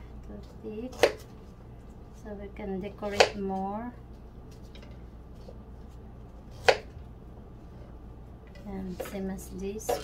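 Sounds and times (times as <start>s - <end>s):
steady low hum: 0.0s - 10.0s
knife chopping on wooden board: 0.9s - 1.3s, 3.0s - 3.4s, 6.6s - 6.9s.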